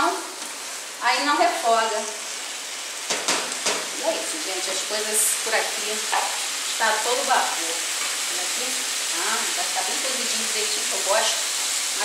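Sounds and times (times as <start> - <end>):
chicken sizzling in hot oil: 0.0 - 12.0.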